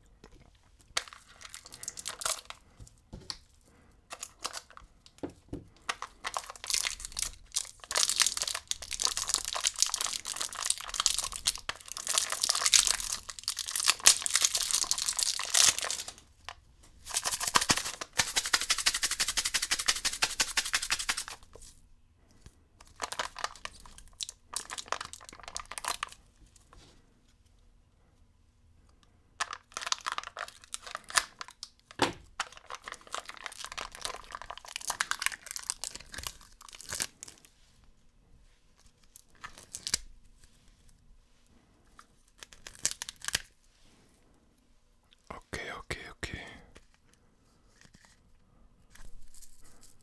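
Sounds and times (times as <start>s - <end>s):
plastic packaging crinkling and tearing: 1.0s - 2.6s, 4.1s - 4.9s, 5.9s - 16.2s, 17.0s - 21.8s, 22.8s - 26.2s, 29.4s - 37.5s, 38.8s - 40.5s, 42.0s - 43.6s.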